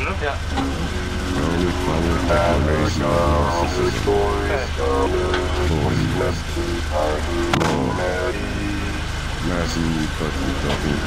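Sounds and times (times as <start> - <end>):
low steady hum: 0.0 - 11.0
music with singing voice: 0.5 - 11.0.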